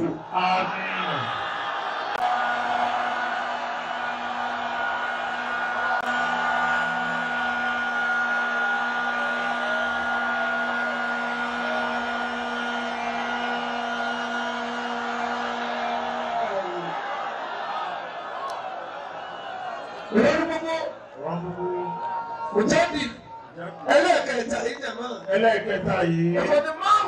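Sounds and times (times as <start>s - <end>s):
crowd sound: 0.0s - 27.0s
person chanting a long note: 5.3s - 16.9s.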